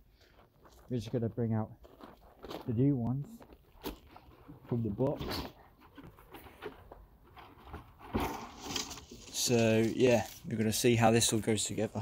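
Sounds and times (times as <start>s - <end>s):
cardboard box rustling: 3.4s - 10.4s.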